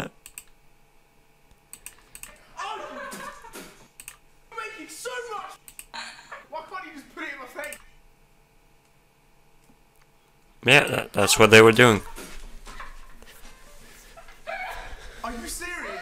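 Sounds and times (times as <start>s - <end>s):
computer keyboard clicks: 0.2s - 0.6s, 1.7s - 2.4s, 4.0s - 4.2s, 7.6s - 7.8s.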